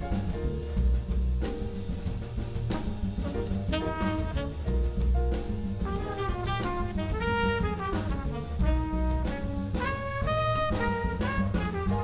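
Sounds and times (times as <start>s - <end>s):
drum kit with cymbal: 0.0s - 12.0s
walking upright bass: 0.0s - 12.0s
trumpet: 3.2s - 4.9s, 5.8s - 12.0s.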